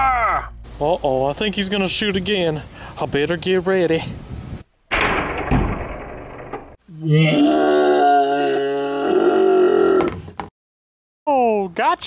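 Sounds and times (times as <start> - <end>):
person groaning: 6.9 - 10.2.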